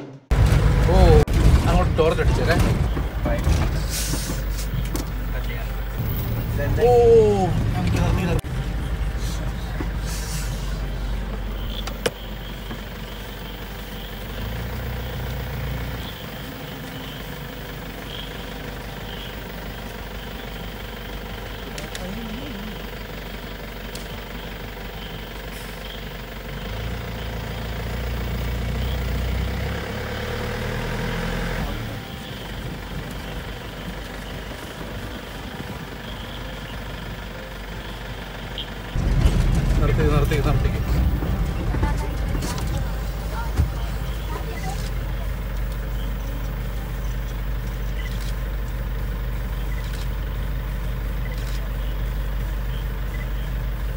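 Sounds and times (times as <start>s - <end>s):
vehicle engine idling: 0.1s - 53.9s.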